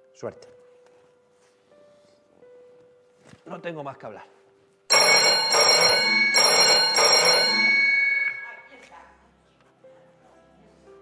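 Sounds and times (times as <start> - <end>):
telephone bell ringing: 4.9 - 8.7.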